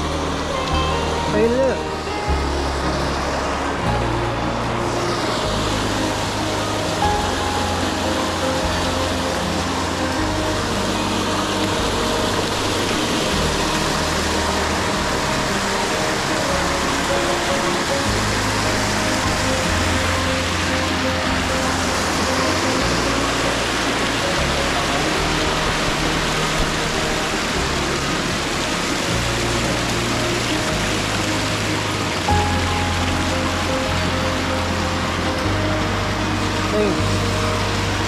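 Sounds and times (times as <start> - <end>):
background music bass line: 0.0 - 38.0
small waterfall rushing: 0.0 - 38.0.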